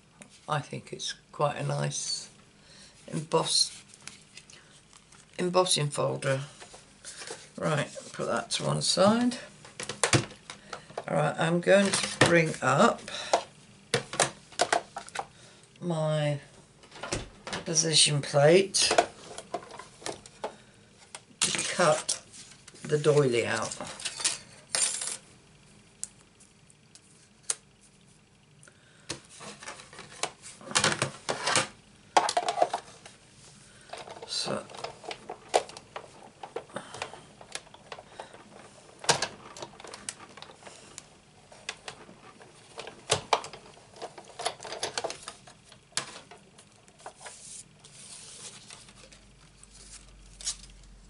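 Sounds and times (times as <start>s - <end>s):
plastic plates clattering: 29.5s - 33.0s.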